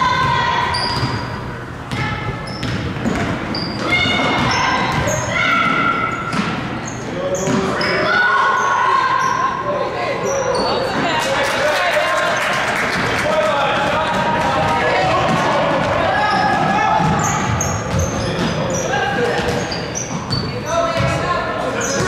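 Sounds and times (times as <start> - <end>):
sneakers squeaking on floor: 0.0 - 11.2, 14.1 - 22.0
basketball bouncing on wooden floor: 1.9 - 6.6, 14.1 - 18.6, 19.4 - 21.2.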